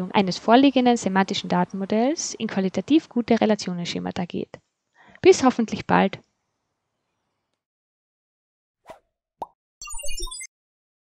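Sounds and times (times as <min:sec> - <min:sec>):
sparkly blips stepping down: 0:09.8 - 0:10.5.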